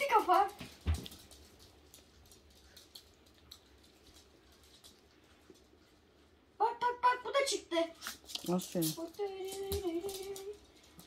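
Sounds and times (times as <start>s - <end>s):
dog claws ticking on floor: 0.0s - 6.0s, 8.0s - 11.0s.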